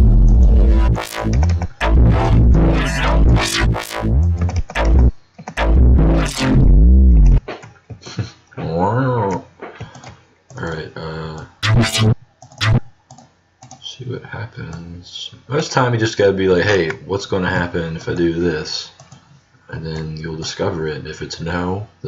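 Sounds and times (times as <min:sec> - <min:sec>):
synthesized dubstep bass: 0:00.0 - 0:07.4, 0:11.6 - 0:12.9.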